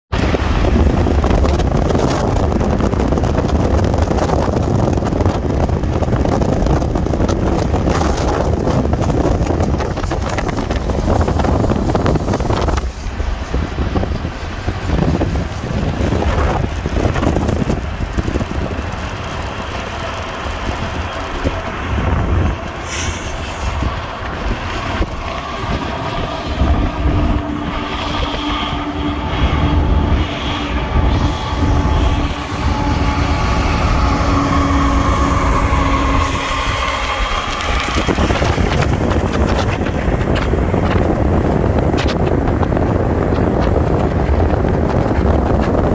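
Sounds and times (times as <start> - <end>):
locomotive whine: 0.1 - 45.9
train wheels rumbling on rail: 0.1 - 45.9.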